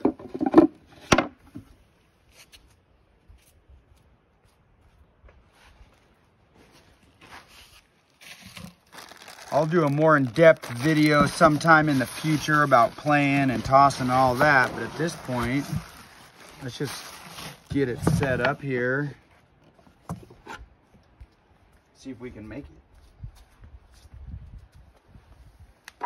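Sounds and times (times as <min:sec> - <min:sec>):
faint rustling and handling noise: 0:01.6 - 0:25.9.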